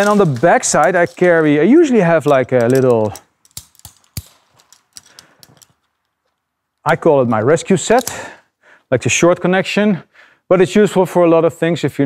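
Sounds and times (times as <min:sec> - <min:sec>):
carabiners clicking and clinking: 0:00.0 - 0:06.5, 0:07.8 - 0:08.4.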